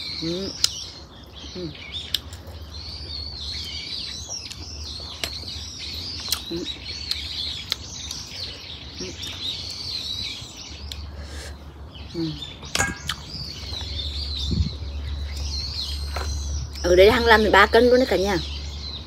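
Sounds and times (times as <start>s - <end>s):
songbirds chirping: 0.0s - 19.0s.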